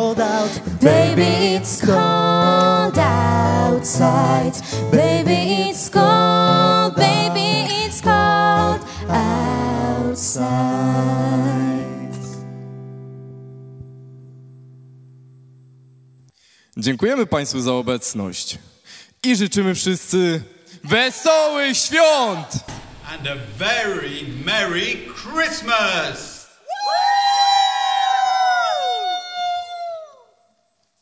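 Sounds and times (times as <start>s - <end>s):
acoustic guitar chord ringing: 0.4s - 10.0s, 11.5s - 16.3s
group of voices cheering: 26.6s - 30.3s.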